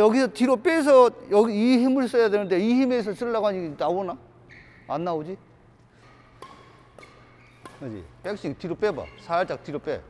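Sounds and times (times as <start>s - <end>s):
racket striking shuttlecock: 5.8s - 9.7s.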